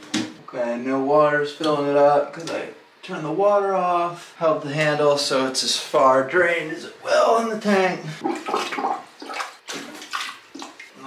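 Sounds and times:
plunger pumping in toilet: 8.2 - 11.0
water sloshing and splashing: 8.2 - 11.0.

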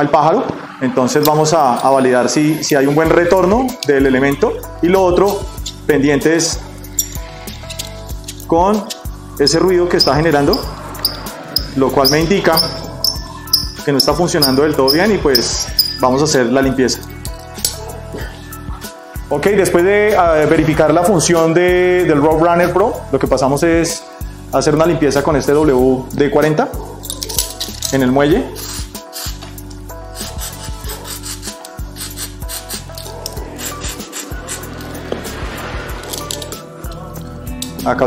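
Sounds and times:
background music: 0.0 - 38.0
metallic clicks and clinks: 10.0 - 16.0, 27.0 - 28.0, 28.6 - 34.9, 36.0 - 37.8
aerosol spraying: 28.5 - 36.6.

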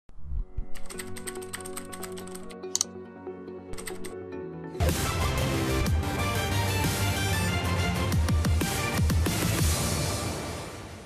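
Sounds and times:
keyboard typing clicks: 0.7 - 2.9, 3.7 - 4.2.

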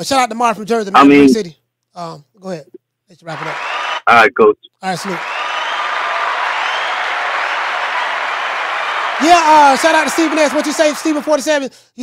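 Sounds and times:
applause: 3.2 - 4.1, 4.9 - 11.6
faint cheering: 5.1 - 11.5.

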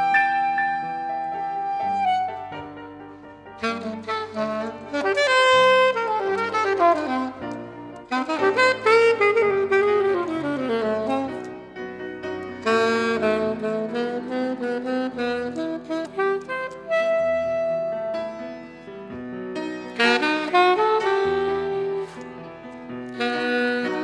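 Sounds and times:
saxophone melody: 0.0 - 24.0.

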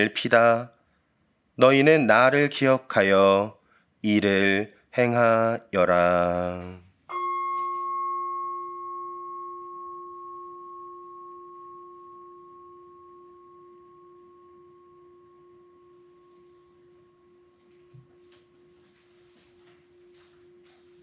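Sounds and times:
altar bell ringing: 7.1 - 21.0.

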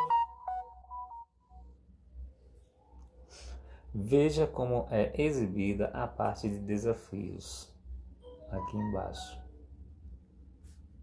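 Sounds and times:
electronic ringtone jingle: 0.0 - 1.6, 8.2 - 9.5.

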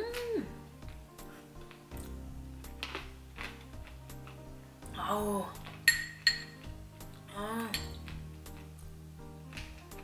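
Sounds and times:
background music: 0.0 - 10.0
spoon clinking against glass: 5.8 - 6.6.

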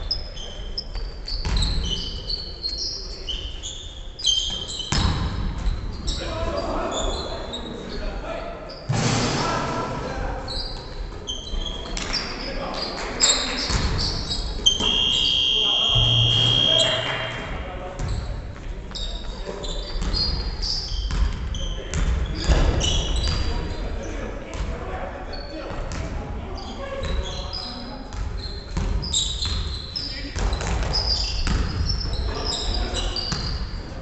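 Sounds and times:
sneakers squeaking: 0.0 - 9.0, 10.3 - 34.0
basketball bouncing: 1.4 - 1.6, 4.9 - 5.7, 21.1 - 22.6, 28.1 - 29.7, 30.4 - 31.9, 33.3 - 33.6
players calling out: 14.0 - 17.6.

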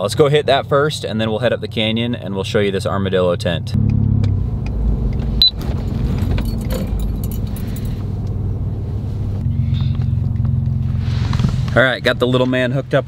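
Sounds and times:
engine and road hum: 0.0 - 13.0
rattling clicks: 6.0 - 8.0.

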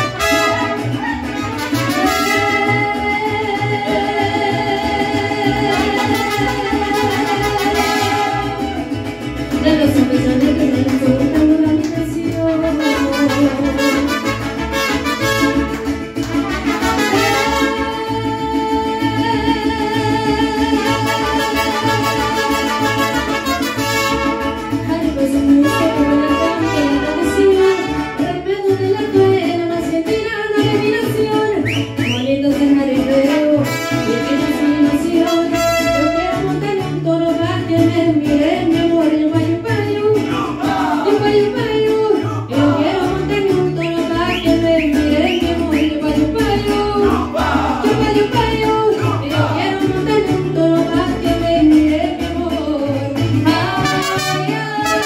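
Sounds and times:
mariachi band playing: 0.0 - 55.0.

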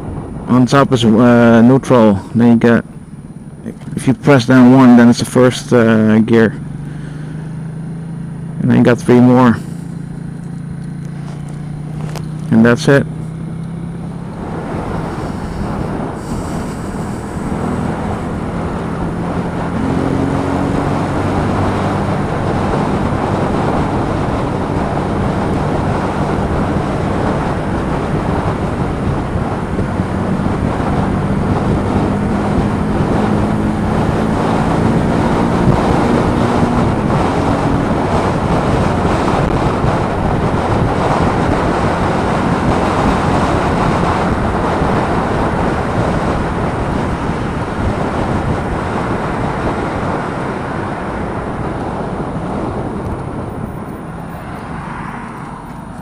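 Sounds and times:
wind noise in helmet: 0.0 - 1.1, 13.3 - 56.0
motorcycle engine: 1.2 - 56.0.

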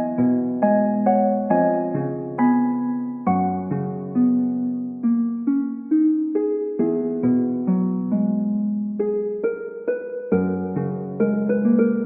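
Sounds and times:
soft sustained keyboard notes: 0.0 - 12.0.

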